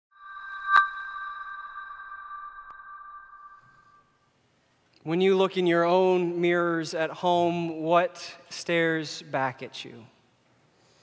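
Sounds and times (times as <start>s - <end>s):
high ringing tone: 0.1s - 4.3s.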